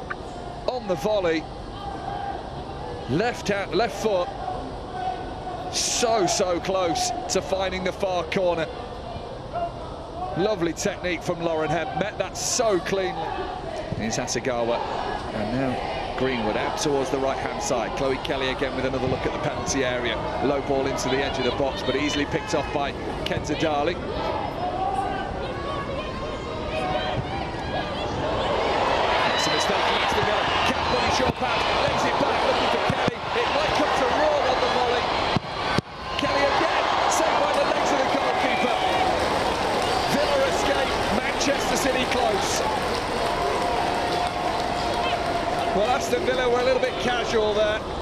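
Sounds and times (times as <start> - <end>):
stadium crowd shouting: 0.3 - 10.5, 14.5 - 48.0.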